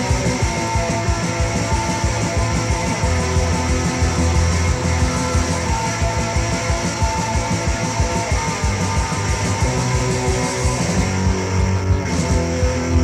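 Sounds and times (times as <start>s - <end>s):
bass guitar: 0.0s - 13.0s
driving drum beat: 0.0s - 13.0s
electric guitars: 0.0s - 13.0s.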